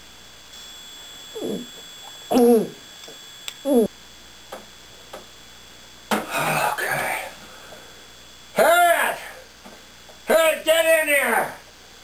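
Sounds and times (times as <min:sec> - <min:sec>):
throaty vocal sounds: 0:06.3 - 0:07.3.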